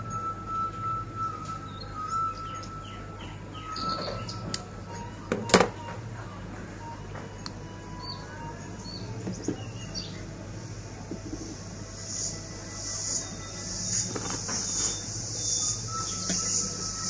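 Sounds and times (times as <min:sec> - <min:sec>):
bird chirps: 0:00.0 - 0:05.3, 0:12.0 - 0:17.0
insects buzzing: 0:07.6 - 0:17.0.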